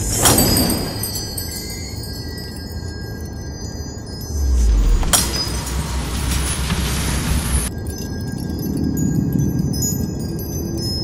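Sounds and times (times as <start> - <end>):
glass shattering: 0.0 - 2.4, 4.2 - 7.7
deep rumble: 4.1 - 7.7.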